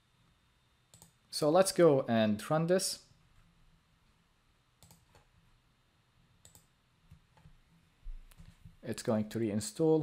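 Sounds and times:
computer mouse clicks: 0:00.9 - 0:01.2, 0:04.8 - 0:05.3, 0:06.4 - 0:07.5.

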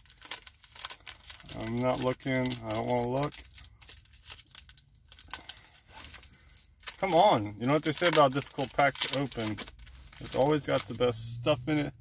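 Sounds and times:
foil wrapper crinkling and tearing: 0:00.0 - 0:11.2.

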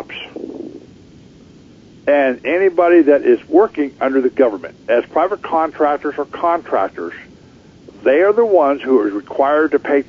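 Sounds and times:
telephone line hiss: 0:00.0 - 0:10.0
caller speaking over telephone: 0:02.1 - 0:07.3, 0:07.9 - 0:10.0.

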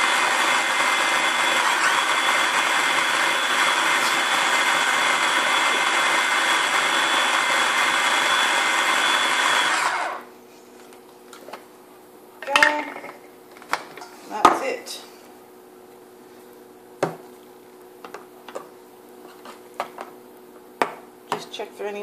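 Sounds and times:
electric blender whining: 0:00.0 - 0:10.3.

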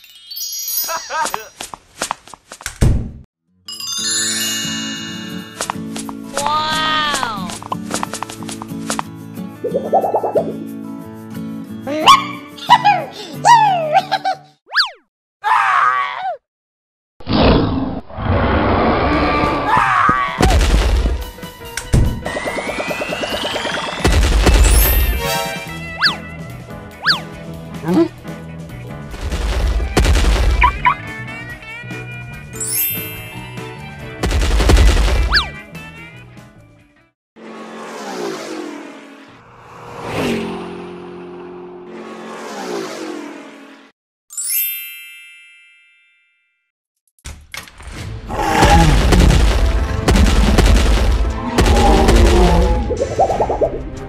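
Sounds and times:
background music: 0:03.7 - 0:14.2, 0:24.7 - 0:37.1
high pitch-sliding cartoon voice: 0:06.3 - 0:07.6
loud dinosaur roar: 0:17.2 - 0:19.9, 0:48.3 - 0:49.3, 0:51.4 - 0:53.0
boing-like glide: 0:22.2 - 0:24.1, 0:52.1 - 0:53.8
car passing by: 0:37.4 - 0:43.9.

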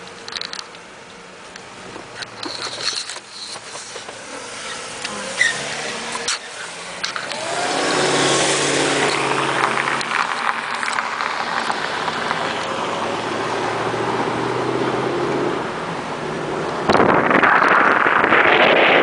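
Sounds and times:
car engine hum: 0:00.0 - 0:19.0
tyre and road noise: 0:00.0 - 0:19.0.

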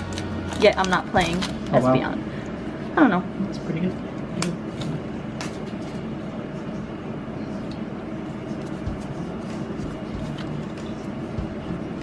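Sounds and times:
low background hum: 0:00.0 - 0:12.0
trading cards flipped by hand: 0:08.6 - 0:11.2.

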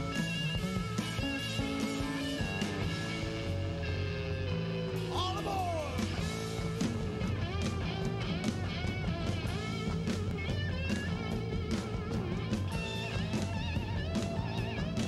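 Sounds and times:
bass guitar: 0:00.0 - 0:15.0
drums with cymbal hits: 0:00.0 - 0:15.0
slide electric guitar: 0:00.0 - 0:15.0.

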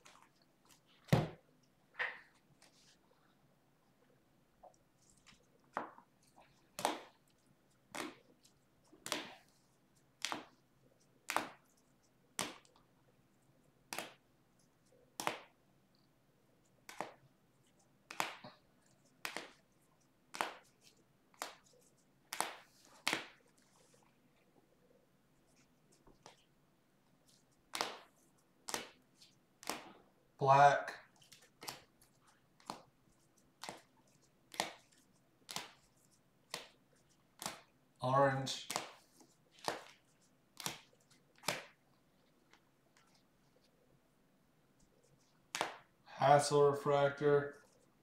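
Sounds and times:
trading cards flipping: 0:19.2 - 0:19.6, 0:28.7 - 0:29.8, 0:31.1 - 0:32.0, 0:33.6 - 0:35.9, 0:37.4 - 0:37.7, 0:38.5 - 0:41.8, 0:45.0 - 0:45.9.

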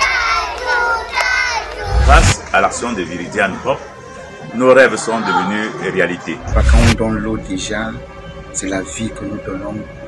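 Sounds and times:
children shouting and cheering: 0:00.0 - 0:04.0
loud low rush: 0:01.8 - 0:02.4, 0:06.4 - 0:07.6.

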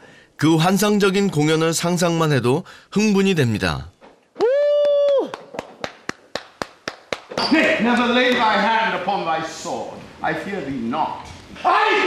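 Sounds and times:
slow hand claps echoing: 0:04.7 - 0:07.4.

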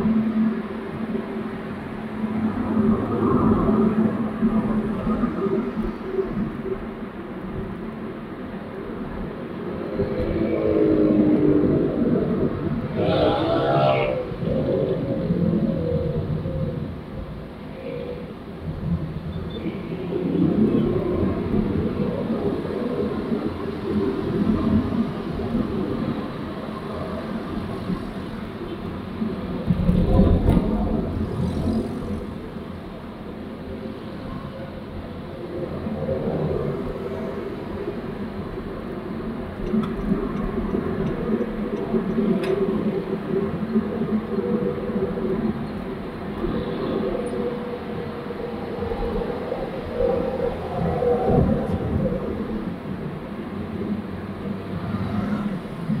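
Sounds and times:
road and engine rumble in car: 0:00.0 - 0:56.0
motorcycles passing: 0:30.1 - 0:32.6.

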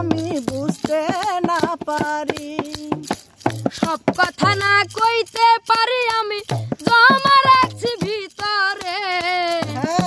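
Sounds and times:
boy singing folk song: 0:00.0 - 0:10.0.

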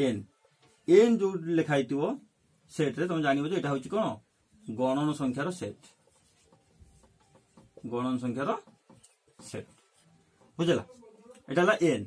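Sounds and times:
marker scratching on whiteboard: 0:04.2 - 0:11.5.

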